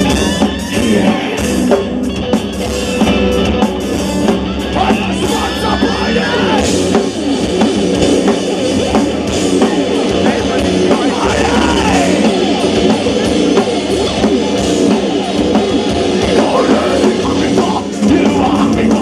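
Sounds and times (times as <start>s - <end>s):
distorted electric guitars: 0.0s - 19.0s
drum kit: 0.0s - 19.0s
person singing: 16.3s - 19.0s.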